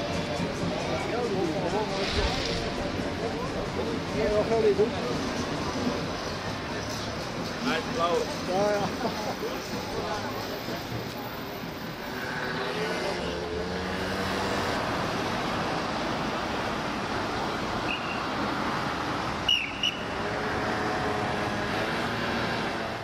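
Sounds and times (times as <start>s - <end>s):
street traffic: 0.0s - 23.0s.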